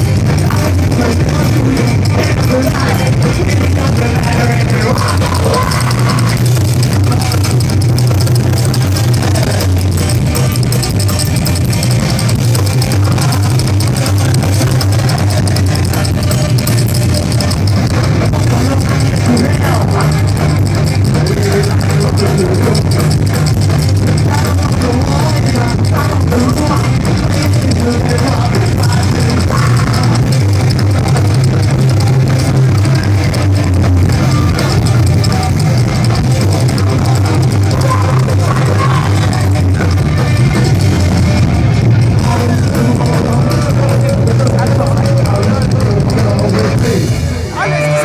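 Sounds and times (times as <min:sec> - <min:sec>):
drums and cymbals: 0:00.0 - 0:48.0
live rock band playing loudly: 0:00.0 - 0:48.0
upright bass: 0:00.0 - 0:48.0.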